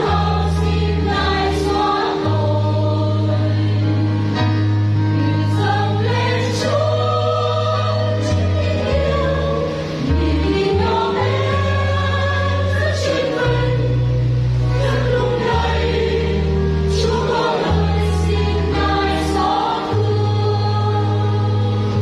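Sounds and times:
mixed choir singing a hymn: 0.0s - 22.0s.

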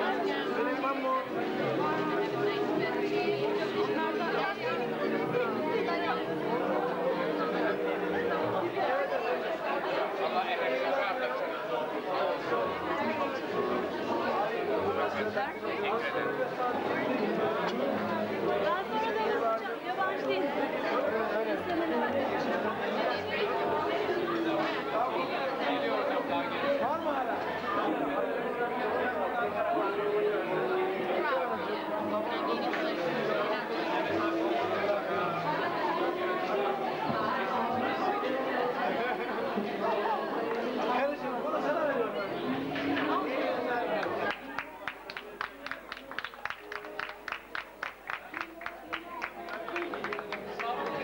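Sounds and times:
crowd chatter: 0.0s - 51.0s.

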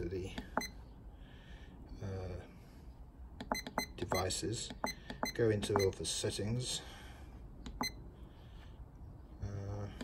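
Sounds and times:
low room noise: 0.0s - 10.0s
keypad clicks: 3.4s - 5.9s.

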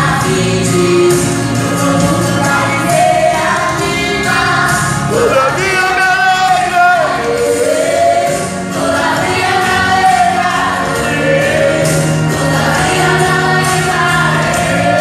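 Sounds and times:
children singing into microphones: 0.0s - 15.0s.

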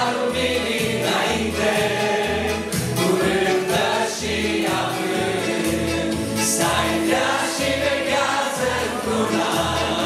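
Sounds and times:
group singing worship song: 0.0s - 10.0s
keyboard accompaniment: 0.0s - 10.0s.

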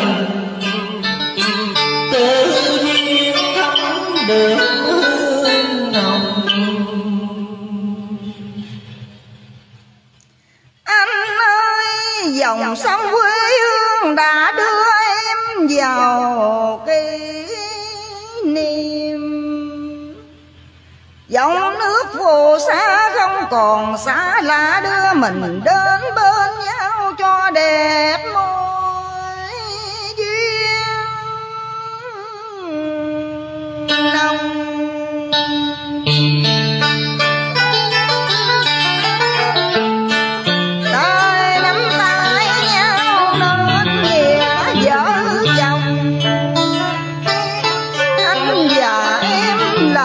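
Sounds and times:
karaoke backing track: 0.0s - 10.2s, 10.9s - 50.0s
woman singing a held note: 40.9s - 45.8s.

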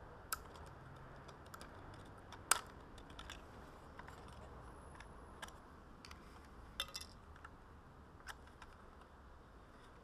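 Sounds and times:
plastic clicks and snaps: 0.3s - 6.2s.

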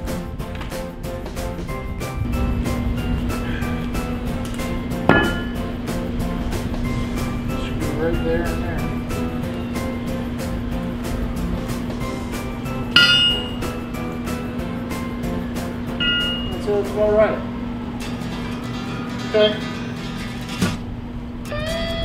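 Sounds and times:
background music: 0.0s - 20.9s
hammer striking metal anvil: 5.0s - 5.6s, 12.9s - 13.8s, 16.0s - 16.6s.

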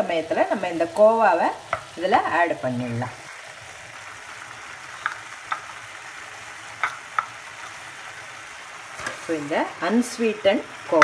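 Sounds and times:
food sizzling and bubbling: 0.0s - 11.0s.

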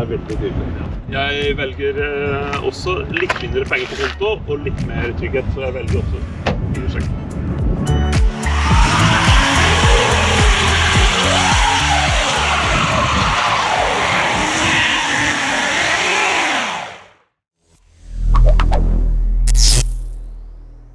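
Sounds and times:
background music with steady beat: 0.0s - 13.5s.

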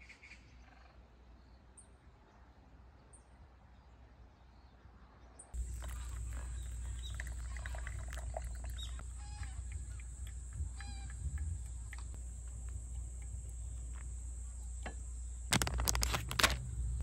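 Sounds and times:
bird chirps: 5.6s - 15.5s
harsh bird calls: 5.6s - 15.5s
high-pitched insect drone: 5.6s - 17.0s
low rumble: 9.0s - 17.0s.

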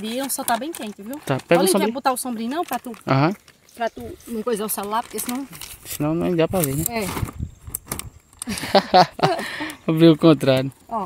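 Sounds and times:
person speaking: 0.0s - 7.2s
umbrella canopy rustling: 0.0s - 8.8s.

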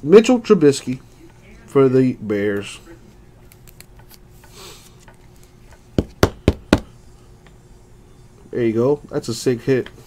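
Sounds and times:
plastic card holder knocking on table: 6.0s - 6.9s.

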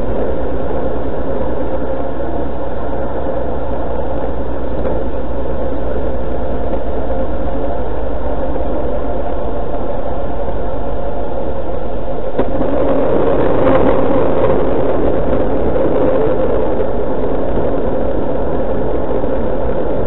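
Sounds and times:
vehicle driving rumble: 0.0s - 20.0s.

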